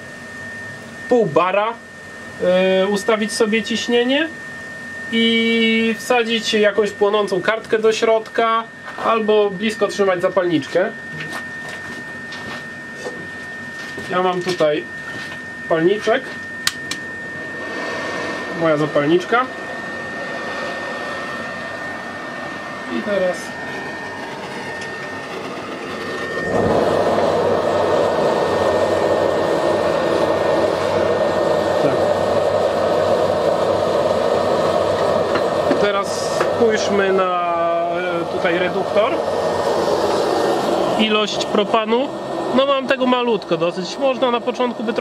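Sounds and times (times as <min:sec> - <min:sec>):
electric air blower running: 0:00.0 - 0:45.0
propane flame burning: 0:00.0 - 0:45.0.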